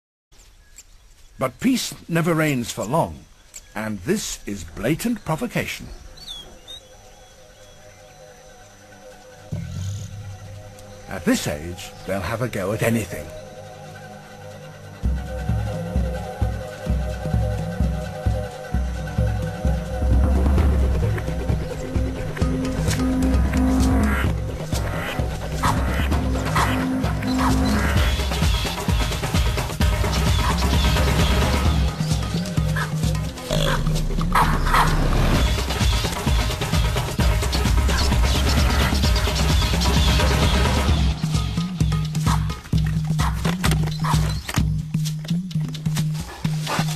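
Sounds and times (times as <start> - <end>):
bird chirping: 0.4 - 46.9
background music with bass line: 13.1 - 46.9.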